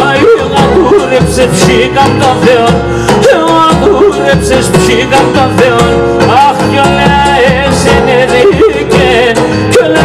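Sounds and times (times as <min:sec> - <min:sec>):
bass drum beating: 0:00.0 - 0:10.0
keyboard: 0:00.0 - 0:10.0
man singing into microphone: 0:00.0 - 0:10.0.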